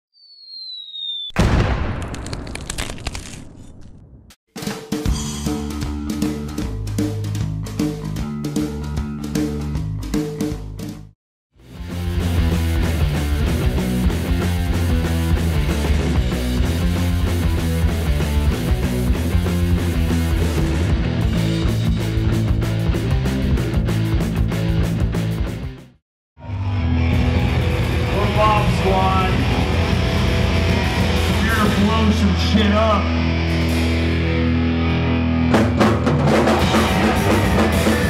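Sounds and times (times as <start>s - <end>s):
short falling whistle: 0.1s - 1.5s
rock music with drums bass guitar: 4.6s - 38.0s.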